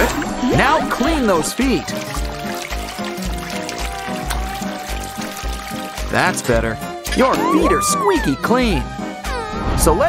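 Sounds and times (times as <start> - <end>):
background music with steady beat: 0.0 - 9.5
water pouring onto a foot: 1.4 - 6.7.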